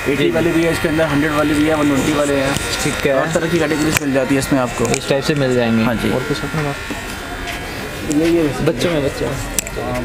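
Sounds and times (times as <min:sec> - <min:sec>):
steady electrical buzz: 0:00.0 - 0:10.0.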